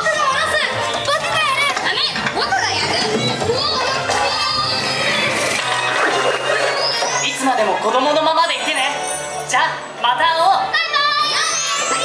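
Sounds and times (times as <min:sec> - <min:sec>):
children calling out: 0:00.0 - 0:07.2, 0:10.7 - 0:12.0
background music: 0:00.0 - 0:12.0.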